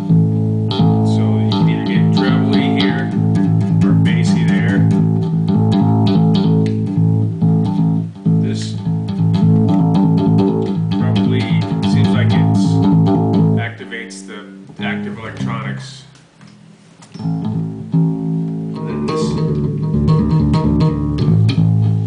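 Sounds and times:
plucked electric bass notes: 0.0 - 22.0.

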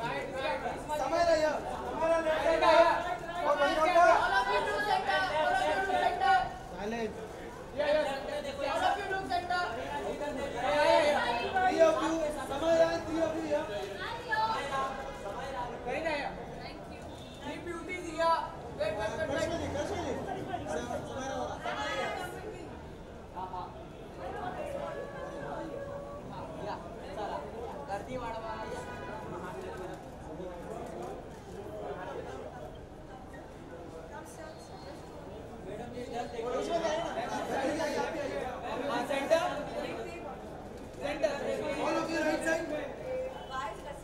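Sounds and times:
crowd chatter: 0.0 - 44.0.

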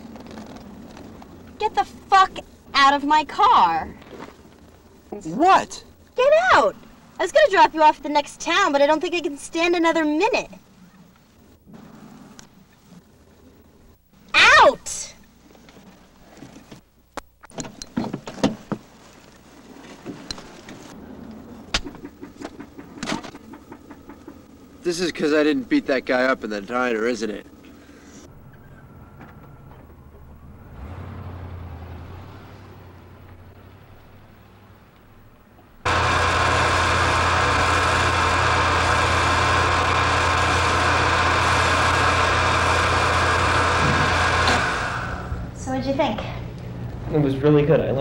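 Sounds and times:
road noise: 0.0 - 17.1, 18.1 - 48.0
sharp clicks and knocks: 21.7 - 24.6
car pulling away: 26.7 - 45.6
loud steady noise: 35.8 - 45.8.

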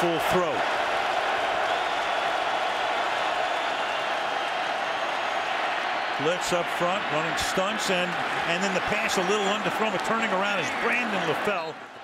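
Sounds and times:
stadium crowd roar: 0.0 - 12.0.

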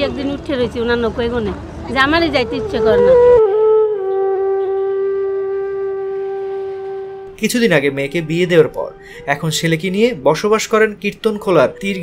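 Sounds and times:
flute-like wind instrument note: 2.8 - 7.4.

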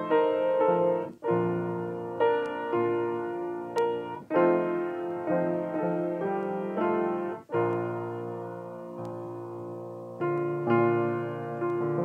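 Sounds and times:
piano chords: 0.0 - 12.0.

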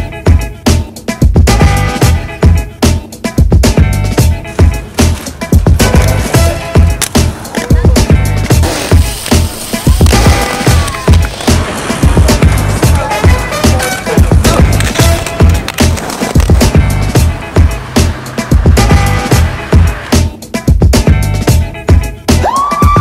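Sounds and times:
music with beat and vocals: 0.0 - 23.0
roller-skate wheels rolling on concrete: 3.7 - 20.4.

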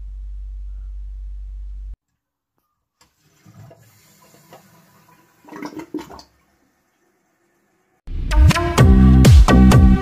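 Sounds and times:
toilet flushing: 3.0 - 8.0.

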